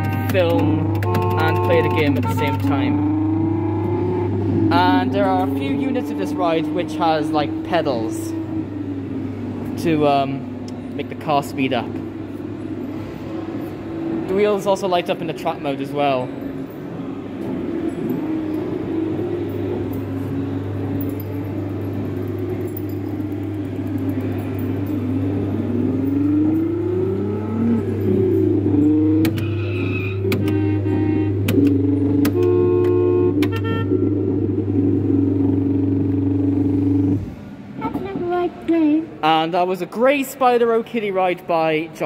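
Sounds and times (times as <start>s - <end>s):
electronic engine-like hum and whine: 0.0s - 38.6s.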